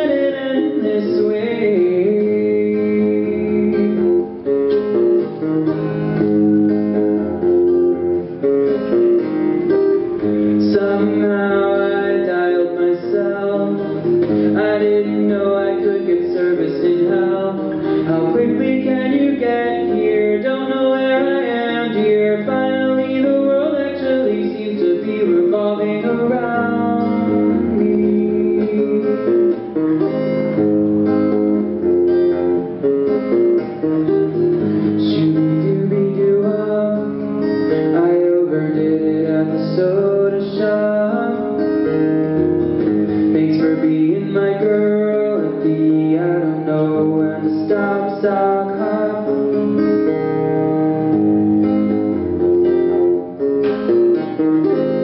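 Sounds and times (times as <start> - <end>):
acoustic guitar strummed and picked: 0.0 - 55.0.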